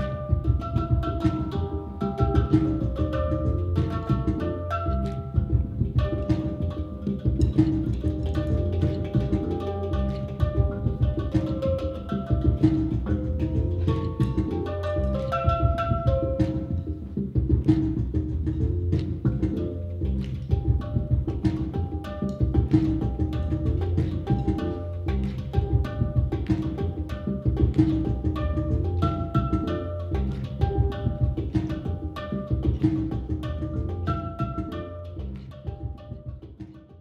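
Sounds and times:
handpan melody: 0.0 - 37.0.

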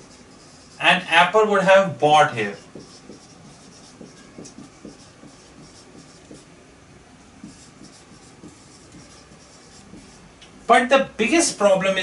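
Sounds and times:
marker scratching on whiteboard: 0.0 - 11.8.

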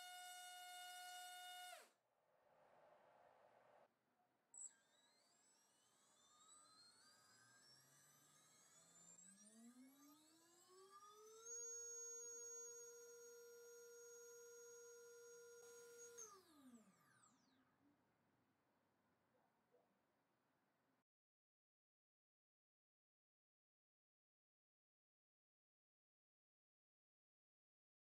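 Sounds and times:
electric motor whining: 0.0 - 1.9.

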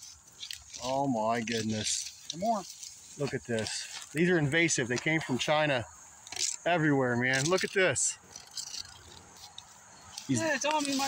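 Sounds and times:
phone handling rustle and ticks: 7.2 - 11.0.

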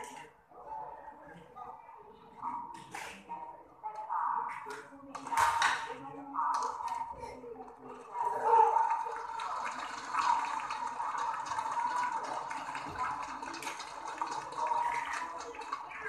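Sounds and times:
crowd cheering and chatter: 0.0 - 16.0.

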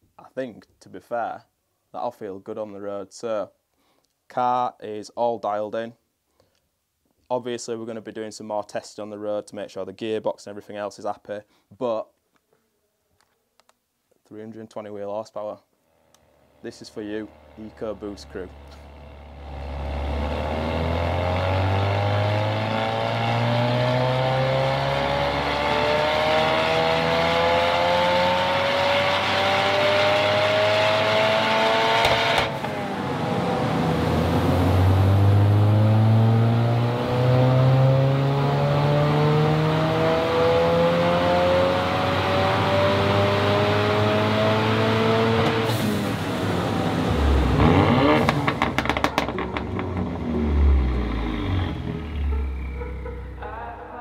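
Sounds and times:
car engine revving at full throttle: 17.0 - 53.4.

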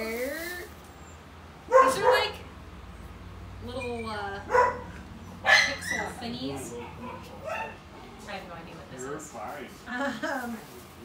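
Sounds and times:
dog barking: 1.7 - 2.4, 4.5 - 7.8.

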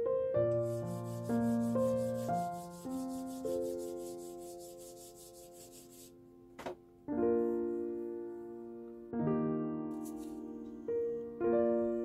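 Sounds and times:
soft piano music: 0.0 - 12.0
abrasive tool rubbing wood: 0.6 - 6.1.

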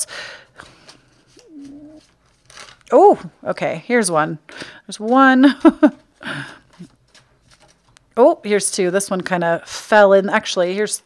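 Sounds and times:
woman humming: 1.4 - 2.0.

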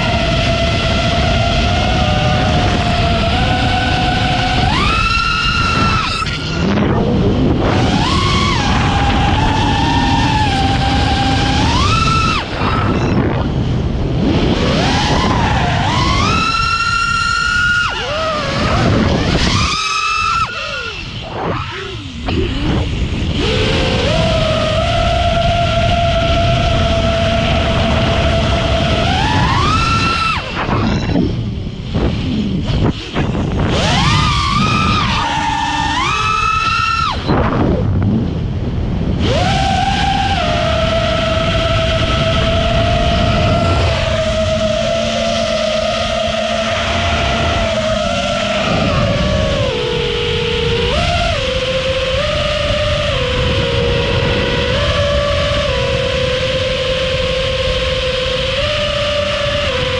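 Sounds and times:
drone motors whining: 0.0 - 59.9
rush of air noise: 0.0 - 59.9.

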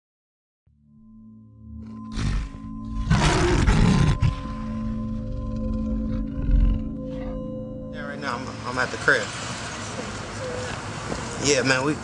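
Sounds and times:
synth drone: 0.8 - 11.0.

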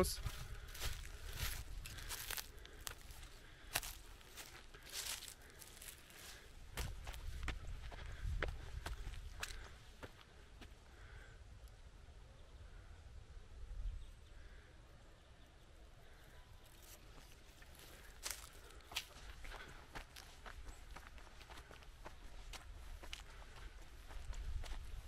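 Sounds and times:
footsteps crunching on twigs: 0.0 - 10.3, 16.7 - 25.0.

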